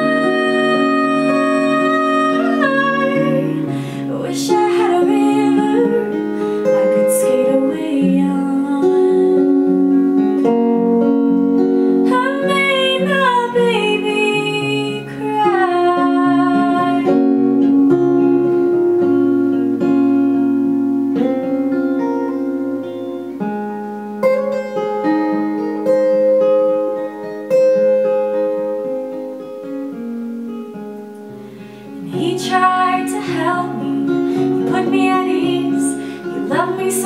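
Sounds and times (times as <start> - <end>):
woman singing: 0.0 - 10.2, 12.0 - 17.7, 31.9 - 37.0
acoustic guitar ringing notes: 0.0 - 37.0.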